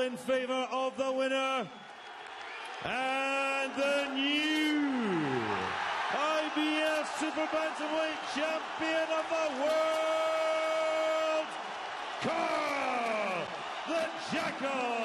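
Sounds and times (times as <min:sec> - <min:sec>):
crowd cheering: 0:01.3 - 0:15.0.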